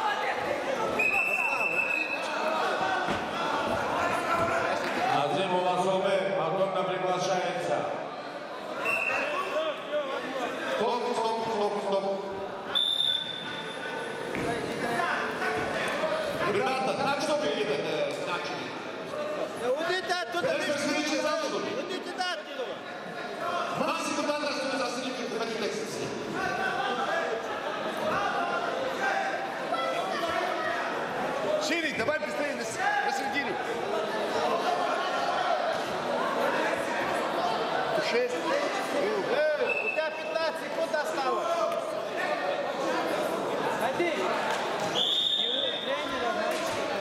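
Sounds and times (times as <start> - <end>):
voices shouting and talking: 0.0 - 47.0.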